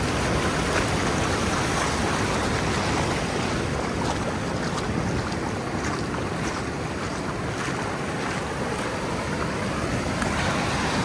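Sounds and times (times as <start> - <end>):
ocean surf rushing: 0.0 - 11.0
wind on microphone: 0.0 - 11.0.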